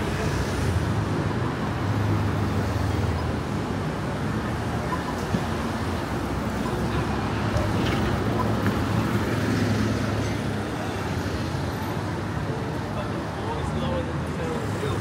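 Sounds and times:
cars passing on busy road: 0.0s - 15.0s
voices of passers-by: 0.0s - 15.0s.

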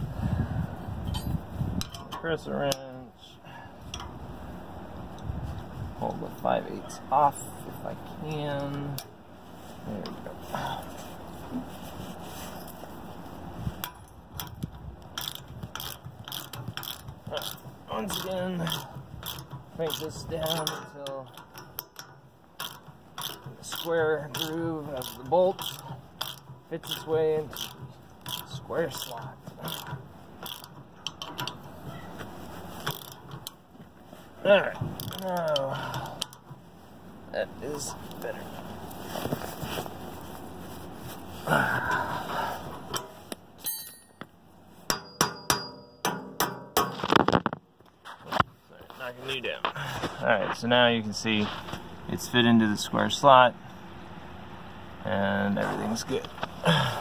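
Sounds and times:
wind buffeting microphone: 0.0s - 2.1s, 3.8s - 6.3s
wrench click: 13.8s - 29.1s.

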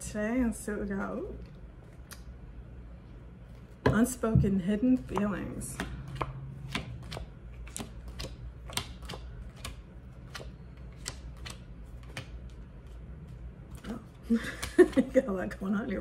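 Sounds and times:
cards being shuffled: 5.8s - 15.2s.

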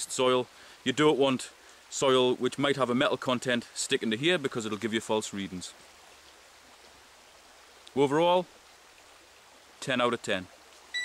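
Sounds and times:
stream running over rocks: 0.0s - 11.0s.

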